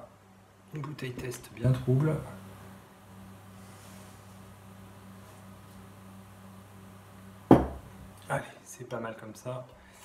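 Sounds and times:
faint steady hum: 0.0 - 10.0
glass bottle knock on wooden table: 7.5 - 7.9.

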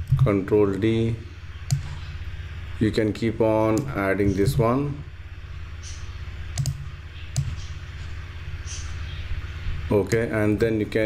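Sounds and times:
low steady hum: 0.0 - 11.0
computer mouse clicks: 1.6 - 1.9, 6.5 - 7.6.

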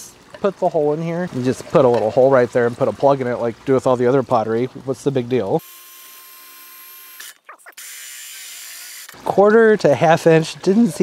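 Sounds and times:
power drill whirring: 5.6 - 9.2.

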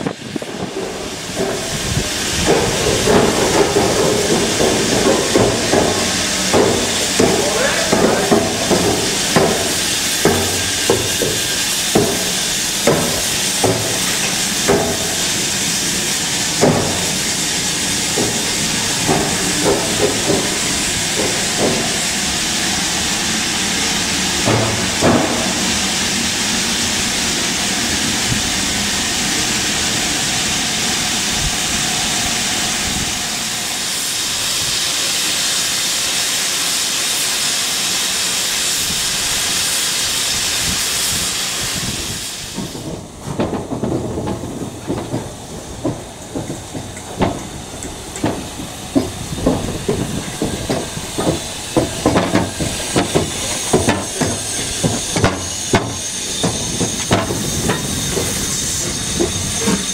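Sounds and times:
metal clanks: 0.0 - 22.2, 24.4 - 26.1, 42.6 - 59.9
low uneven rumbling: 0.0 - 29.0, 42.5 - 59.9
steam train hissing: 0.0 - 59.9.

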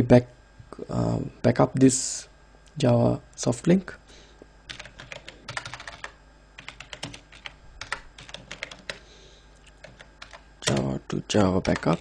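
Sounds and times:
typing on computer keyboard: 4.7 - 9.0, 9.8 - 10.9, 11.6 - 12.0.

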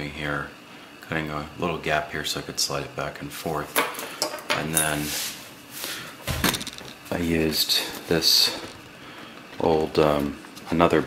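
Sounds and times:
person speaking: 4.5 - 5.4, 6.4 - 8.8, 9.6 - 11.0.

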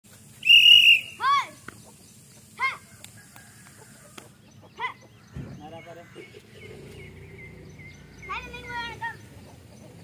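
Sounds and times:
bird calls: 0.2 - 10.0
loud whistle blast: 0.4 - 1.3.

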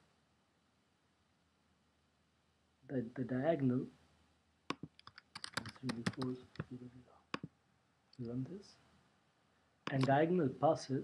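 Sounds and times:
typing on a computer keyboard: 4.7 - 6.8.

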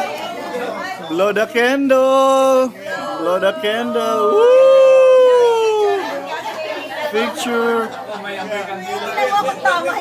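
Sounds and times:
people chattering: 0.0 - 10.0
person cheering woo: 4.2 - 6.1.

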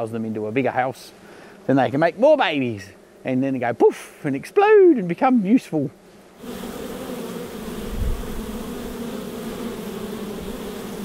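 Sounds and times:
honey bees buzzing: 0.0 - 11.0.

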